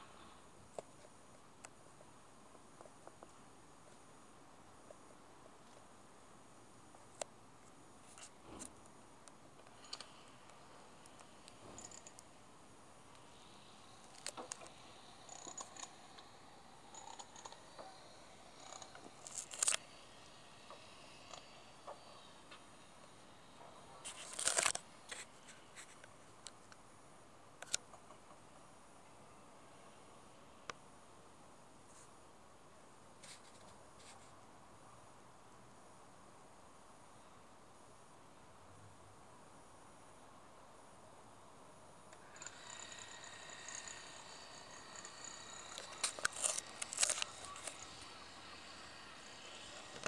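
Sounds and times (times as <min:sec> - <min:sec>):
faint high whine: 0:00.0 - 0:50.0
camera handling rustling: 0:24.1 - 0:25.3, 0:45.8 - 0:47.8.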